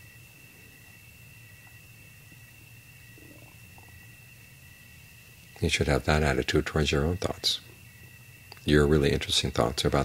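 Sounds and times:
faint high-pitched whine: 0:00.0 - 0:10.0
steady low hum: 0:00.0 - 0:10.0.

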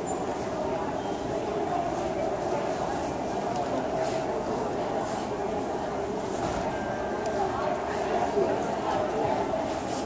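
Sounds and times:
crowd murmur in a large hall: 0:00.0 - 0:10.0.

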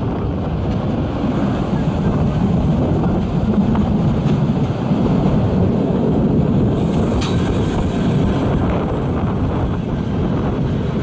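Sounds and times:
train carriages rumbling on track: 0:00.0 - 0:11.0.

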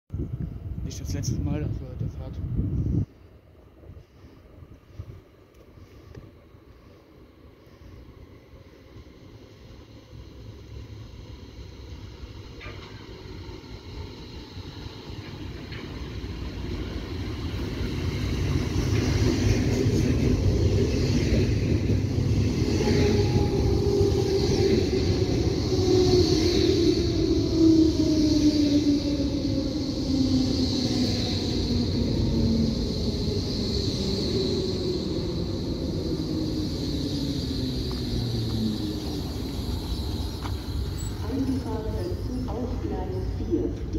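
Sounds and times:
electric train running noise: 0:02.9 - 0:43.9
traction motor whine: 0:28.7 - 0:42.3.

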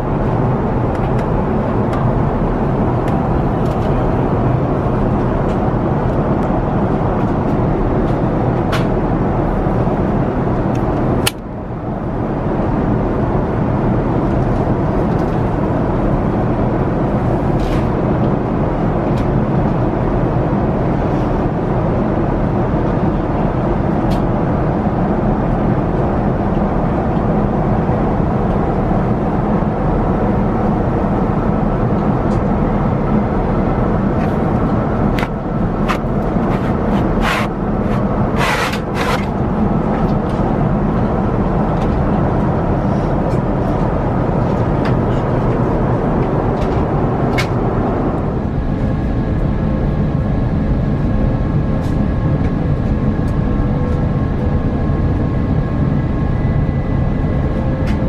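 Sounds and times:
aircraft cabin roar: 0:00.0 - 0:58.0.

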